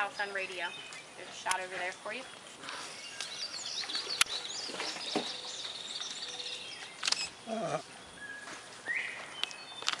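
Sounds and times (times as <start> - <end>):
bird chirps: 2.1 - 10.0
sharp clicks: 7.0 - 7.3.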